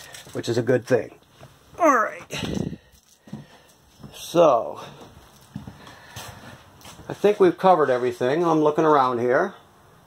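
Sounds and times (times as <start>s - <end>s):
footsteps on trailer floor: 1.2s - 9.2s.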